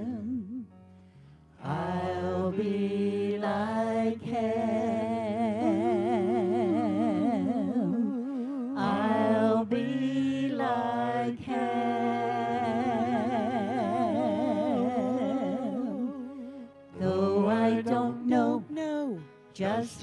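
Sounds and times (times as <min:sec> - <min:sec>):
vocal quartet singing gospel: 0:01.6 - 0:20.0.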